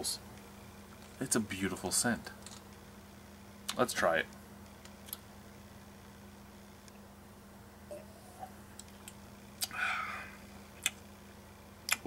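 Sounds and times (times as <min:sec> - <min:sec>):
steady low hum: 0:00.0 - 0:12.0
man breathing out: 0:09.6 - 0:10.4.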